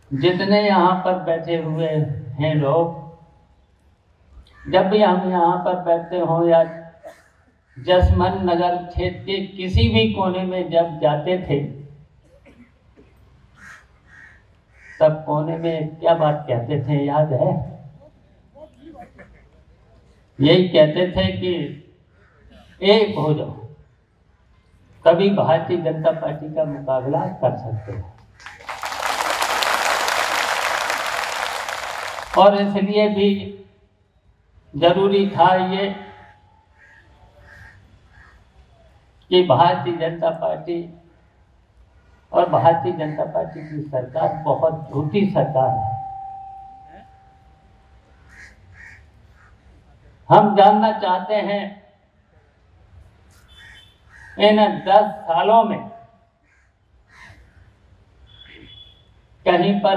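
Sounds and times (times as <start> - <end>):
faint crow cawing: 4.4 - 4.8, 6.7 - 7.9, 13.5 - 15.2, 22.1 - 22.7, 36.0 - 38.8, 48.0 - 49.8, 53.3 - 54.4, 56.4 - 58.8
crowd applauding: 28.4 - 32.6.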